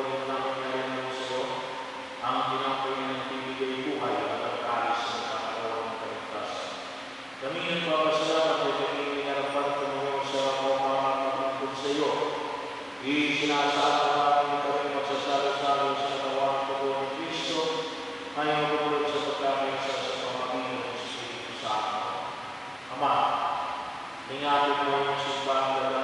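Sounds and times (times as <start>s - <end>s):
priest chanting a prayer: 0.0s - 26.0s.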